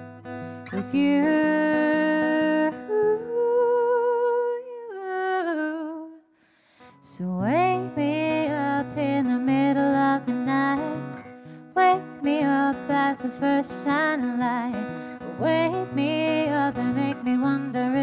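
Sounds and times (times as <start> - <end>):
acoustic guitar: 0.0 - 5.7, 6.6 - 18.0.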